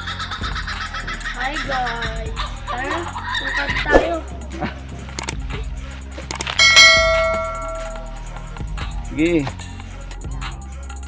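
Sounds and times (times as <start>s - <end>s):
background music: 0.0s - 11.0s
bell-like chime: 6.6s - 8.3s.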